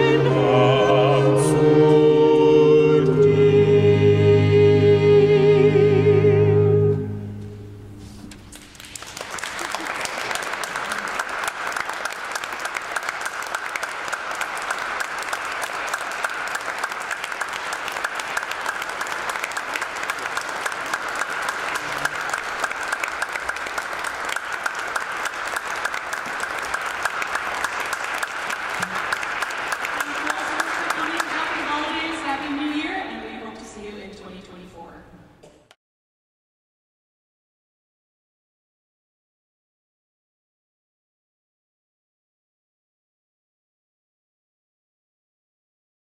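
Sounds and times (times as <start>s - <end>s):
audience applauding: 8.5s - 32.4s.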